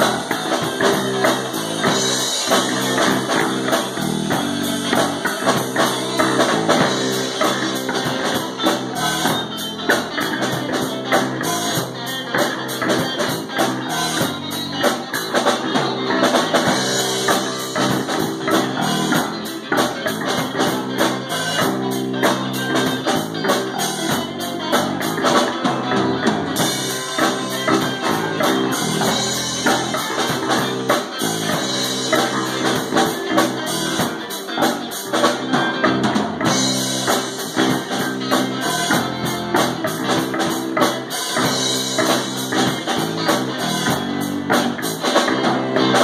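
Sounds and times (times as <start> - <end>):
rock band playing: 0.0 - 46.0.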